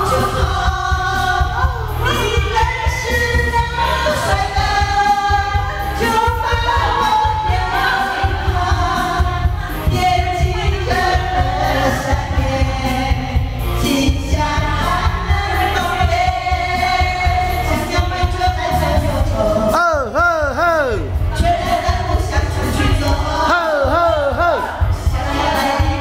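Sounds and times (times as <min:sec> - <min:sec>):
women singing pop into microphones: 0:00.0 - 0:19.8, 0:21.2 - 0:26.0
amplified backing track: 0:00.0 - 0:26.0.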